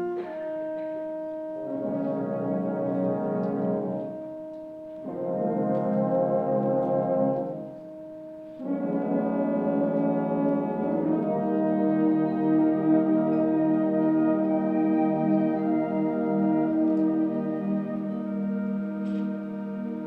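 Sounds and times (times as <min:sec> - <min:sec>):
concert band playing slow chords: 0:00.0 - 0:20.0.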